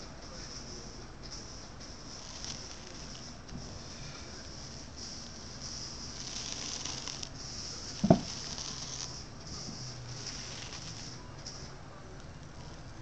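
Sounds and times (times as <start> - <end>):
rubber mold rubbing and rustling: 2.0 - 11.2
mold thumping on wooden board: 8.0 - 8.4.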